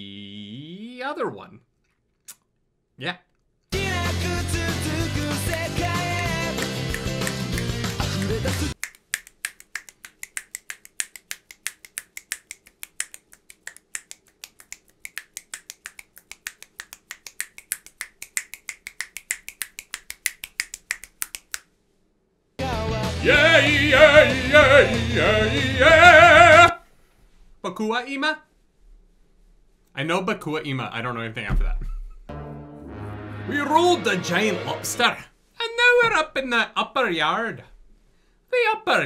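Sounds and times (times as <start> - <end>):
anime theme music: 3.8 - 8.8, 22.6 - 26.7, 32.3 - 35.2
fingers snapping: 5.5 - 21.7.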